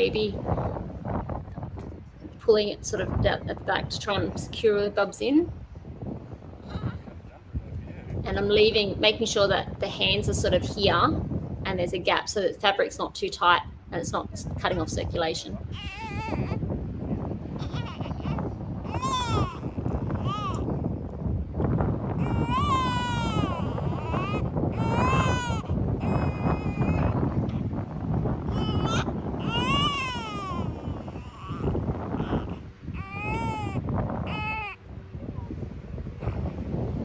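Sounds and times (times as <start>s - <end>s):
newborn baby crying: 15.7s - 16.6s, 17.6s - 20.7s, 22.2s - 27.2s, 28.5s - 34.8s.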